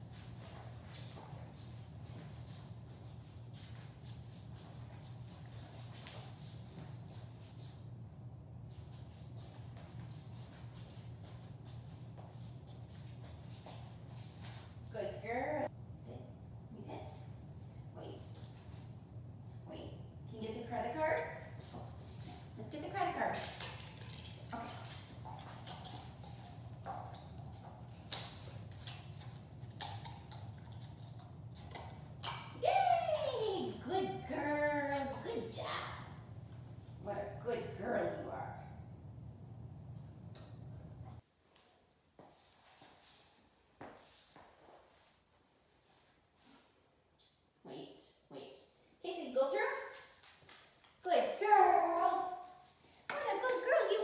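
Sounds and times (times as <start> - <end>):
steady low hum: 0.0 - 41.4
dog claws clicking on tile: 23.3 - 32.6.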